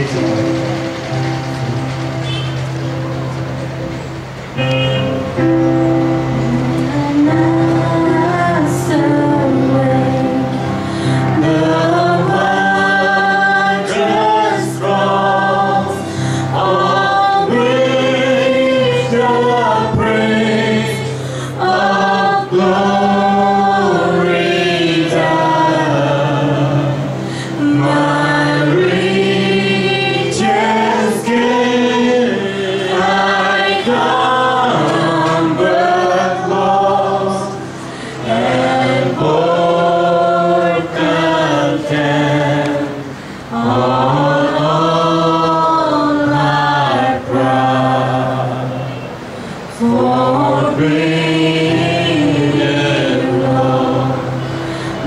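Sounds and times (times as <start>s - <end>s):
acoustic drum kit: 0.0s - 14.9s
guitar: 0.0s - 47.8s
electronic keyboard chords: 0.0s - 55.0s
female and male voices singing: 6.3s - 55.0s.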